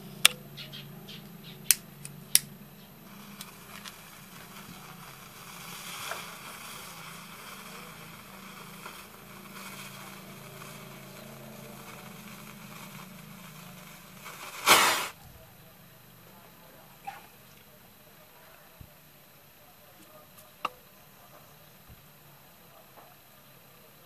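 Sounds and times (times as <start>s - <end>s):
fuse hissing: 3.0s - 15.2s
powder flaring up: 3.0s - 15.2s.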